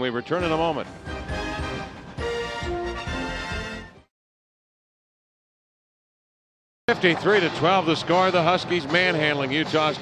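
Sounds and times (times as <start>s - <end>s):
sustained theme music chords: 0.4s - 4.1s.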